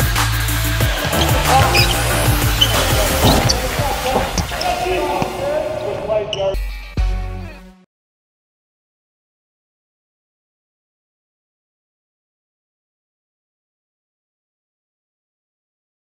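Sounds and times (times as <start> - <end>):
bass-heavy electronic music: 0.0 - 4.3
sneakers squeaking: 0.0 - 6.6
players' voices: 0.0 - 7.6
ball bouncing: 0.8 - 5.4.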